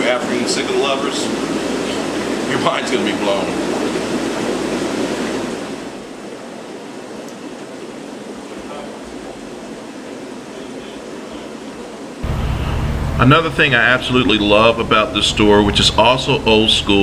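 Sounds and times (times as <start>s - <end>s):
aquarium filters hissing and bubbling: 0.0s - 17.0s.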